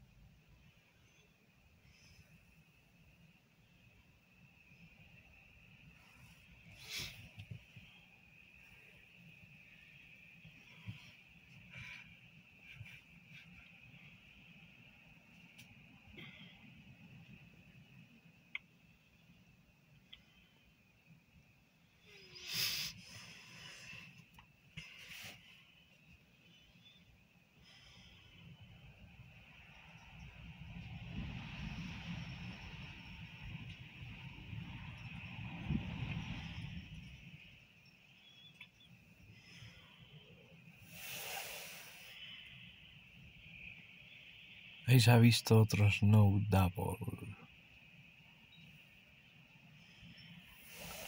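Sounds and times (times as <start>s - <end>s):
gusty wind on microphone: 29.0s - 37.7s.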